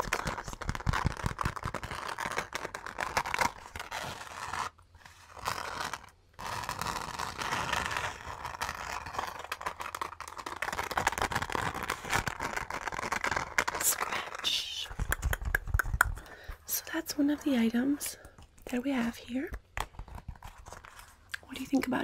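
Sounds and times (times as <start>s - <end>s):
fingers scratching glittery fabric: 0.0s - 14.4s.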